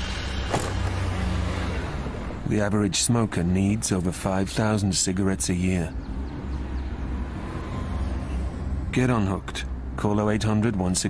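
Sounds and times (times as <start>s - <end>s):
low rumble soundtrack: 0.0s - 11.0s.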